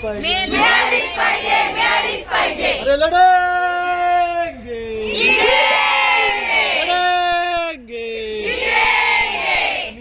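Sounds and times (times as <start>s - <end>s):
crowd of women shouting slogan: 0.2s - 2.8s, 5.1s - 6.9s, 8.4s - 10.0s.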